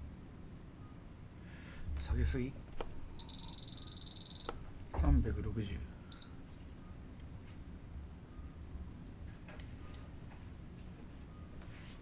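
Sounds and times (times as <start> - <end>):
rapid high beeps: 3.2 - 4.6, 6.1 - 6.4.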